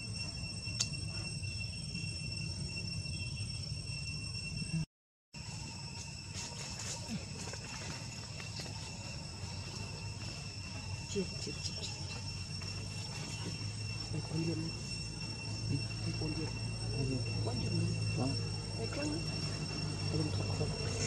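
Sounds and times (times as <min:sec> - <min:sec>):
high insect drone: 0:00.0 - 0:21.0.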